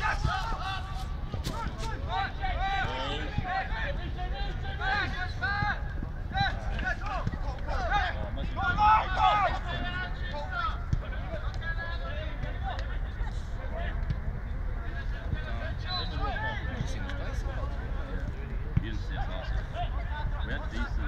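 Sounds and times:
players shouting: 0.0 - 13.1.

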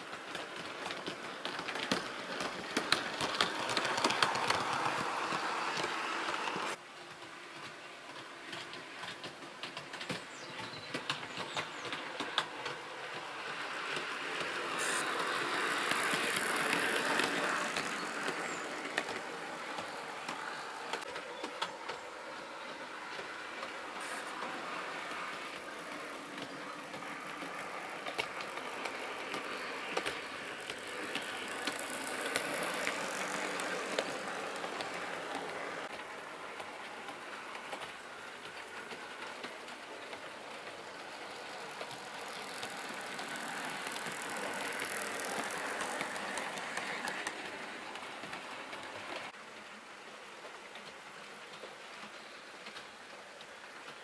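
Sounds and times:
model train motor whirring: 0.0 - 6.8, 10.9 - 49.4
wheels clicking over rail joints: 0.0 - 54.0.

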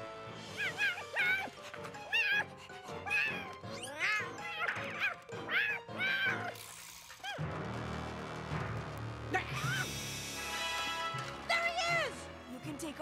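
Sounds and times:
background music: 0.0 - 13.0
cartoon cat meowing and yowling: 0.5 - 6.6.

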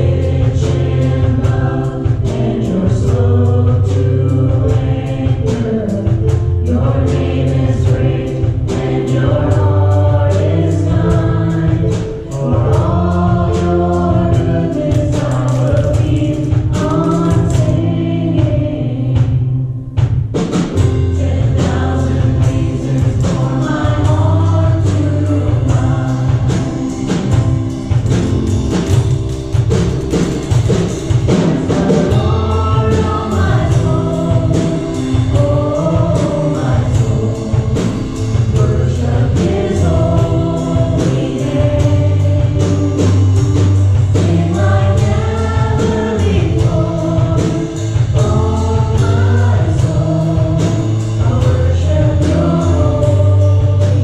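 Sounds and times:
women singing: 0.0 - 19.6, 21.0 - 27.0, 31.5 - 54.0
bass guitar: 0.0 - 54.0
drums steady beat: 0.0 - 54.0
keyboard: 0.0 - 54.0.

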